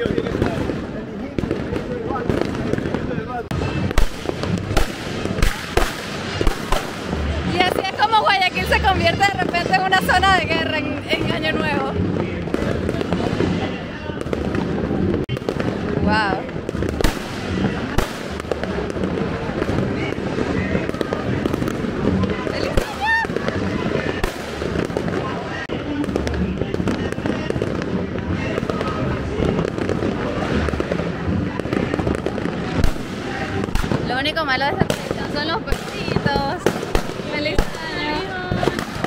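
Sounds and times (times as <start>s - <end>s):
fireworks and firecrackers banging: 0.0s - 39.0s.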